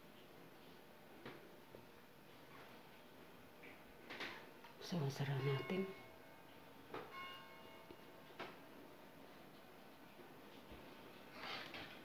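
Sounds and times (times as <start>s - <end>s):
short metallic ring: 7.1s - 7.9s.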